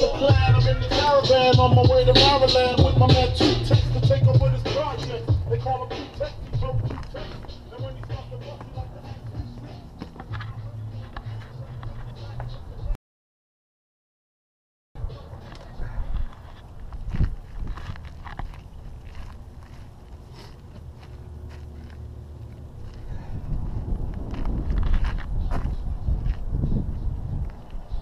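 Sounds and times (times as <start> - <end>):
wind on microphone: 15.8 - 19.2, 22.8 - 28.0.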